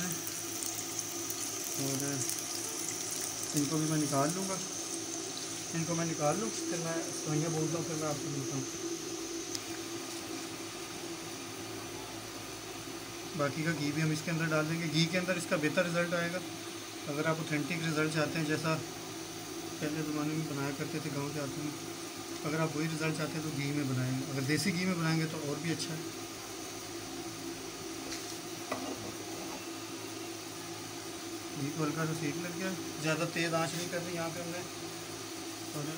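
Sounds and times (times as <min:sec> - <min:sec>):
fat sizzling in a frying pan: 0:00.0 - 0:35.9
kitchen hum and hiss: 0:00.0 - 0:35.9.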